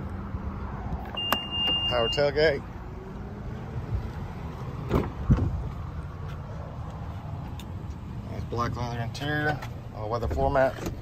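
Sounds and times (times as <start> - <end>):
high-pitched warning beep: 1.2 - 2.4.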